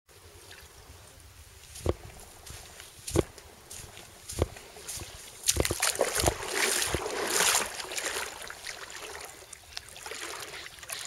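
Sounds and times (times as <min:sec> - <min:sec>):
water splashing from swimming: 0:04.9 - 0:11.0.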